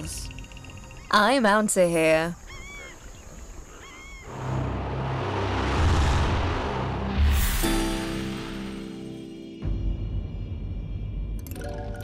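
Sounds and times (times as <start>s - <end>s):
ominous documentary music: 0.0s - 1.9s, 4.3s - 12.0s
rising whoosh: 4.3s - 9.2s
low pulsing rumble: 4.4s - 7.7s.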